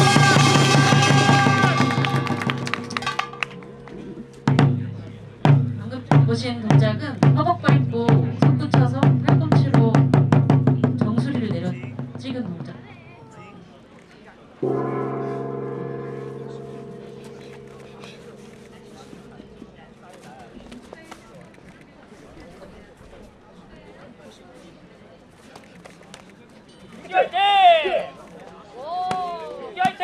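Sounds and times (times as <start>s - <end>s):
low humming gong stroke: 0.0s - 6.2s, 14.6s - 20.8s
fast drum and gong roll: 0.0s - 13.0s.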